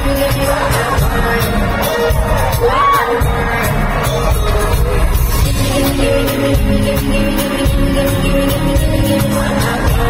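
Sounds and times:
live pop music with heavy beat: 0.0 - 10.0.

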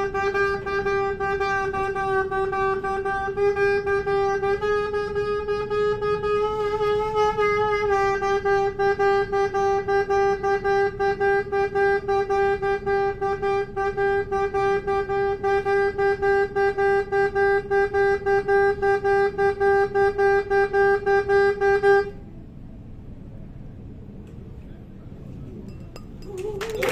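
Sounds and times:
soprano saxophone pulsing note: 0.0 - 22.2.

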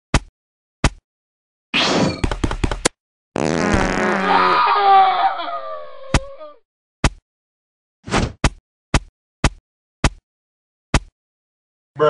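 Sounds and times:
fart sound effect: 3.4 - 4.5.

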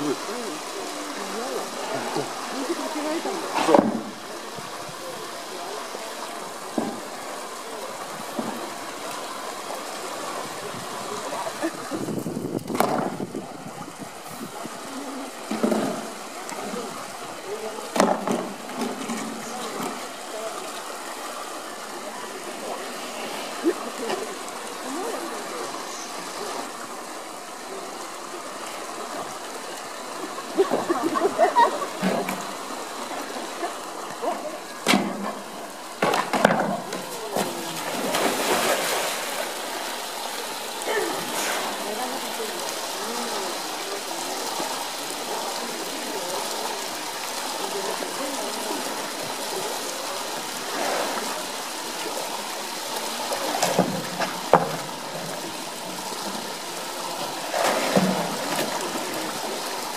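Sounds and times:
outdoor background noise: 0.0 - 59.9
water running and sloshing: 0.0 - 59.9.

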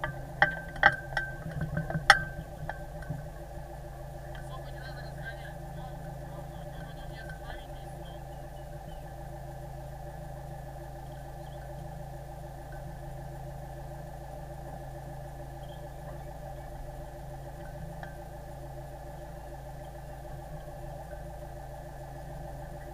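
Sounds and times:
boat engine idling: 0.0 - 22.9.

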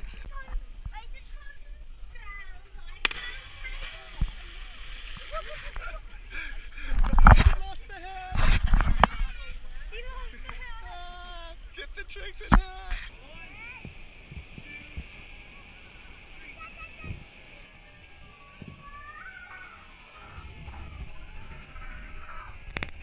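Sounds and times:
voices shouting and calling: 0.0 - 23.0
people splashing into water: 3.0 - 6.2.

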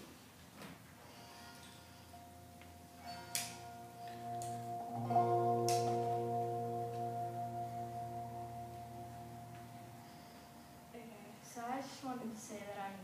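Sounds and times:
electric guitar chords: 2.1 - 11.0.

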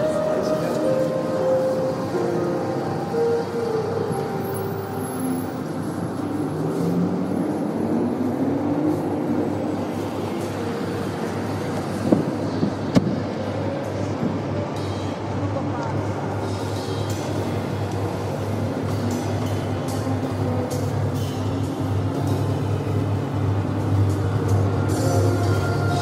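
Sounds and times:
street traffic noise: 0.0 - 26.0.

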